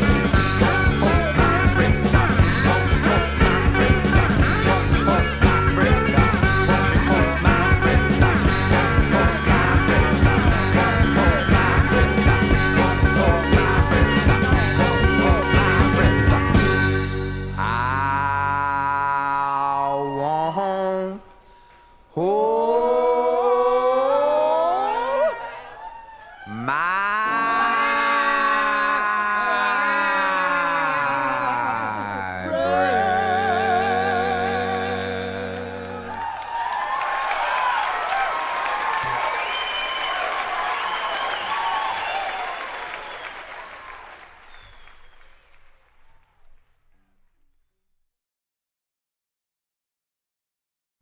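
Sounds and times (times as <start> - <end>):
audience applauding: 33.8 - 46.8
crowd shouts and whistles: 35.9 - 45.3.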